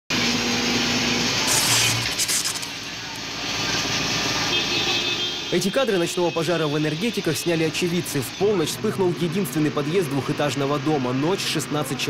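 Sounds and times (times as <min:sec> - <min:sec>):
fire engine humming: 0:00.1 - 0:12.0.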